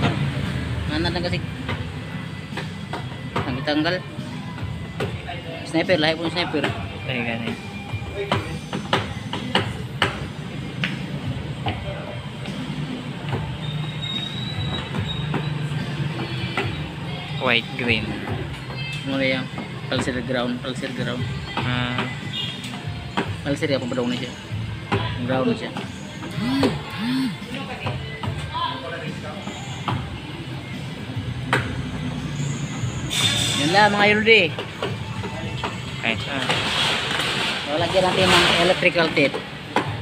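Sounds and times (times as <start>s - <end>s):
steady background noise: 0.0s - 40.0s
low mechanical hum: 26.0s - 27.5s.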